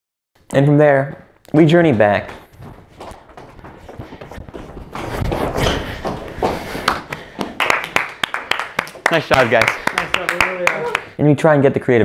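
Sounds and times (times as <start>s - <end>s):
shuffling footsteps: 1.0s - 7.9s
people clapping: 6.4s - 11.2s.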